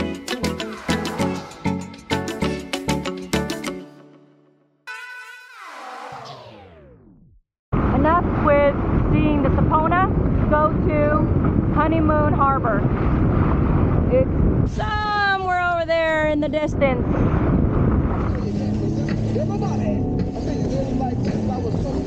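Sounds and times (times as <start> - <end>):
wind buffeting microphone: 7.8 - 22.0.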